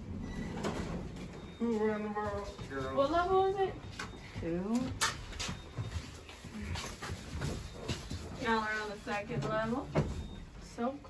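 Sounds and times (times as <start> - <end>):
elevator car rumble: 0.0 - 5.0.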